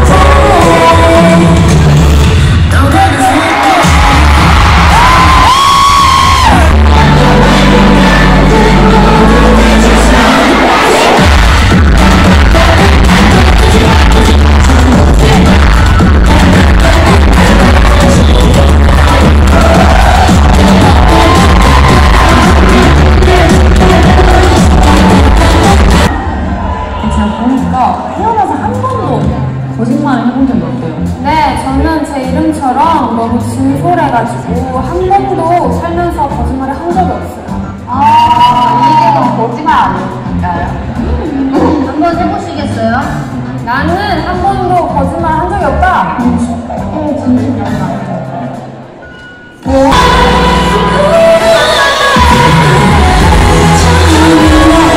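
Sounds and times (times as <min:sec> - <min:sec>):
women singing over bass beat: 0:00.0 - 0:02.6, 0:03.8 - 0:26.1, 0:49.7 - 0:54.9
crowd cheering: 0:02.3 - 0:28.8, 0:49.6 - 0:54.9.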